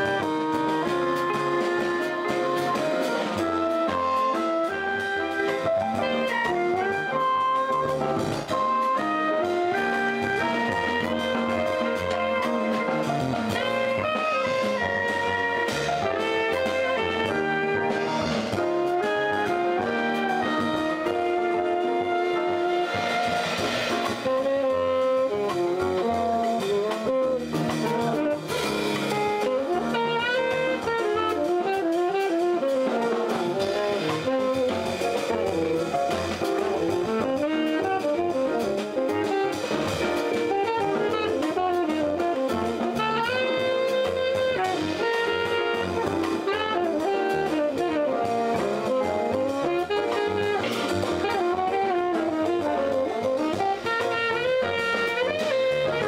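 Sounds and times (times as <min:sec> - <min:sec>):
guitar: 0:00.0 - 0:24.7
double bass: 0:00.0 - 0:56.0
drum kit: 0:00.0 - 0:56.0
tenor saxophone solo: 0:00.0 - 0:56.0.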